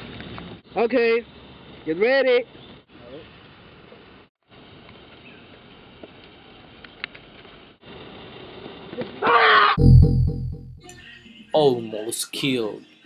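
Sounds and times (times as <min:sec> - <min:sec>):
faint outdoor background noise: 0:00.0 - 0:09.8, 0:11.0 - 0:13.0
music with heavy bass: 0:09.8 - 0:11.1.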